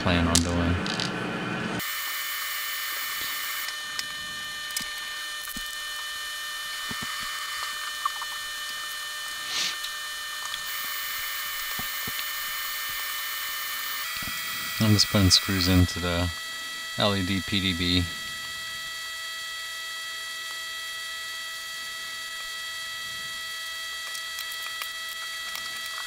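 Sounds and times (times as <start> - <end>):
small clicks: 23.6 - 26.0.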